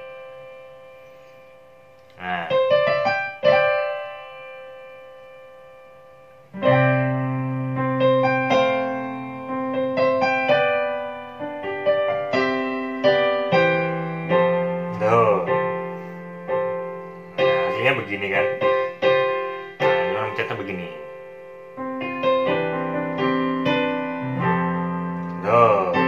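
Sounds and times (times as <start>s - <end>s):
piano chords: 0.0s - 26.0s.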